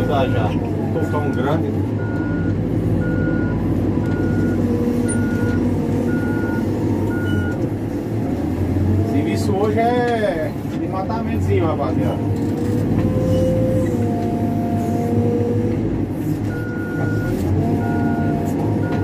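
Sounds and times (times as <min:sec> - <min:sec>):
reversing alarm beeping: 0:00.0 - 0:07.6, 0:16.5 - 0:19.0
diesel engine running: 0:00.0 - 0:19.0.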